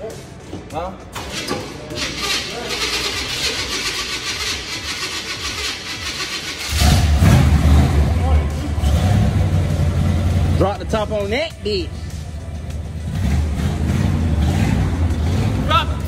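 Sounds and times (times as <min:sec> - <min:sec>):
engine starting and idling: 0:01.2 - 0:08.1.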